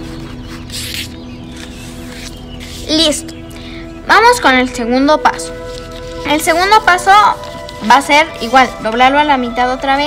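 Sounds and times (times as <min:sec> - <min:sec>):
paper rustling: 0:00.0 - 0:03.4, 0:05.3 - 0:09.4
background music: 0:00.0 - 0:10.0.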